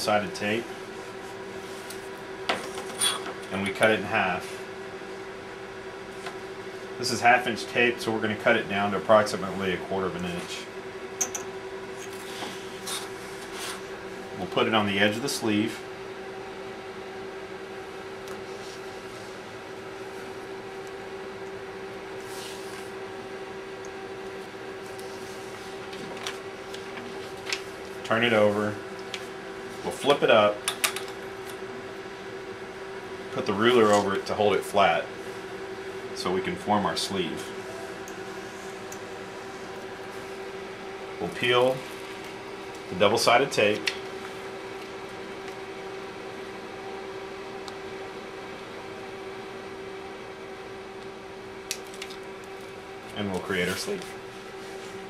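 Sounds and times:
steady electrical hum: 0:00.0 - 0:55.0.

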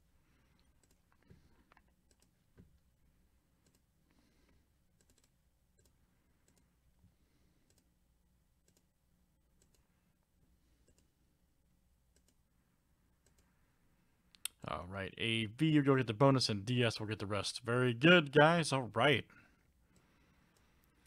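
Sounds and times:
computer mouse clicks: 0:00.6 - 0:02.7, 0:03.6 - 0:04.2, 0:05.0 - 0:06.7, 0:07.6 - 0:07.9, 0:08.6 - 0:08.9, 0:09.6 - 0:09.9, 0:10.8 - 0:11.1, 0:12.1 - 0:12.4, 0:13.2 - 0:13.5, 0:19.9 - 0:21.0.

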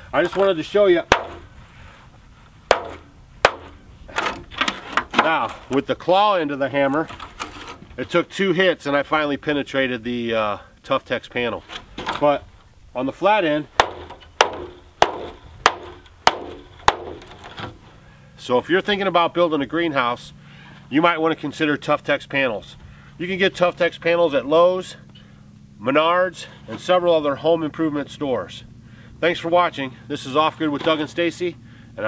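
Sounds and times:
hammer striking plastic panel: 0:01.1 - 0:01.4, 0:02.7 - 0:03.8, 0:13.8 - 0:17.3.

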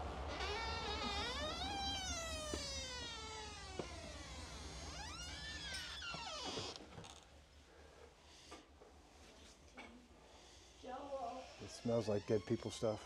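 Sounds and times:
door hinges squeaking: 0:00.3 - 0:07.2, 0:11.6 - 0:13.0.

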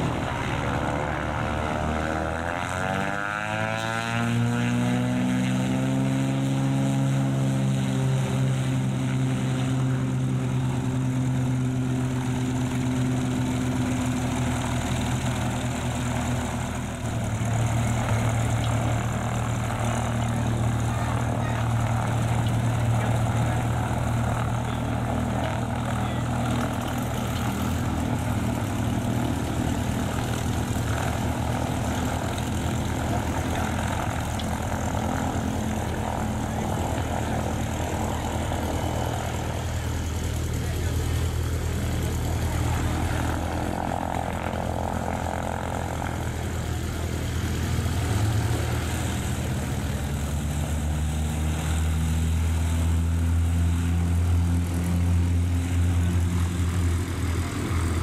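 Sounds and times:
nearby airplane engine taxiing: 0:00.0 - 0:58.0
propeller airplane engines droning: 0:00.0 - 0:58.0.

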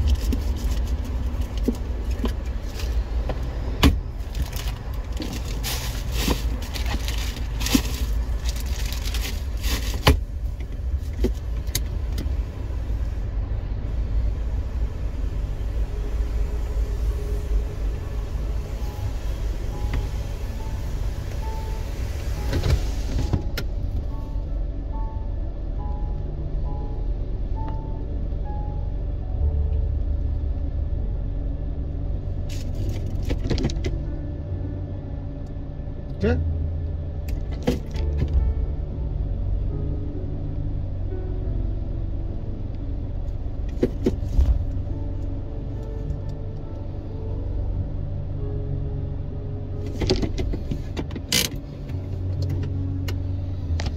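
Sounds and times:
car engine rumble: 0:00.0 - 0:53.9
faint music: 0:00.0 - 0:53.9.

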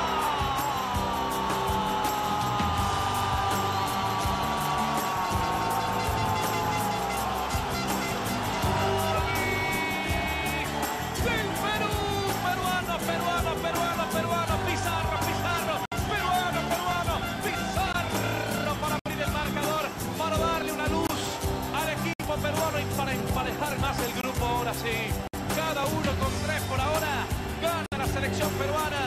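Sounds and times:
music with steady beat: 0:00.0 - 0:29.0.

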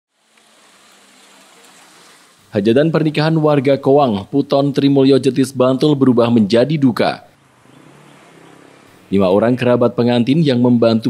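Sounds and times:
outdoor ambience hiss: 0:00.1 - 0:11.0.

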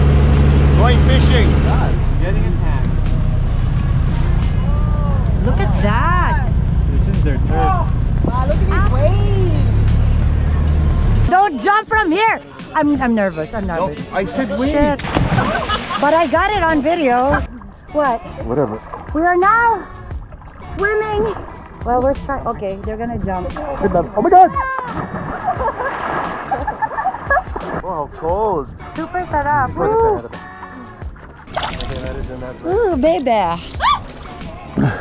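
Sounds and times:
background music: 0:00.0 - 0:35.0
boat engine humming: 0:00.0 - 0:35.0
voices: 0:04.3 - 0:09.8, 0:11.2 - 0:25.7, 0:26.8 - 0:31.0
people talking: 0:04.7 - 0:09.6, 0:11.3 - 0:15.0, 0:15.9 - 0:19.9, 0:20.8 - 0:25.0, 0:27.8 - 0:30.4, 0:31.9 - 0:33.7
water splashing: 0:13.5 - 0:35.0
people laughing: 0:13.8 - 0:17.6, 0:24.9 - 0:27.8
person exclaiming: 0:29.6 - 0:30.3, 0:32.6 - 0:33.0.

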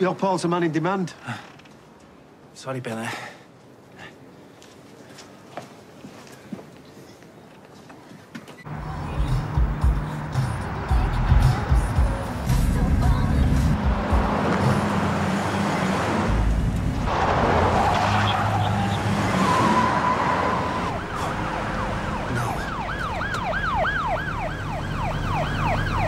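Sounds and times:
car passing by: 0:08.7 - 0:22.9
police siren yelping: 0:17.9 - 0:26.0.

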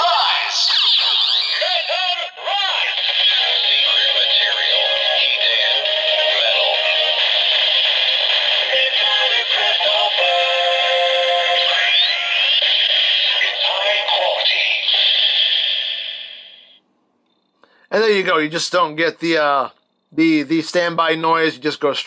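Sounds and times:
synthesized voice: 0:00.0 - 0:15.9
tinny electronic music from toy speaker: 0:00.0 - 0:16.7.

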